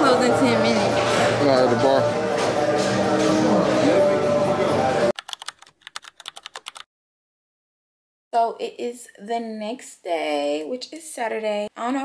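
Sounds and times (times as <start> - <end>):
bar music: 0.0 - 5.2
keyboard typing clicks: 5.2 - 6.8.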